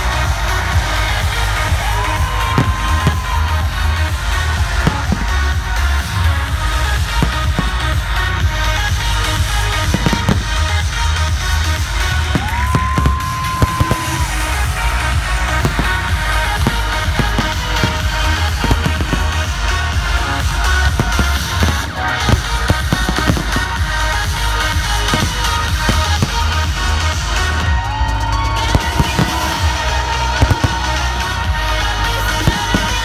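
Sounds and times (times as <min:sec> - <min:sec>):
electronic dance music: 0:00.0 - 0:33.0
fireworks bursting and crackling: 0:00.0 - 0:33.0.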